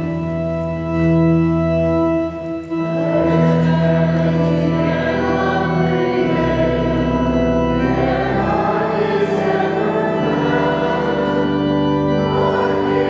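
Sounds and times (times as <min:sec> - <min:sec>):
church organ: 0:00.0 - 0:13.0
many voices singing a hymn: 0:03.0 - 0:13.0.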